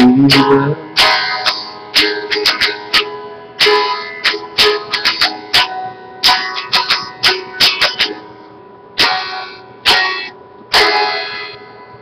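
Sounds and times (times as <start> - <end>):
electric guitar chords strummed: 0.0 - 12.0.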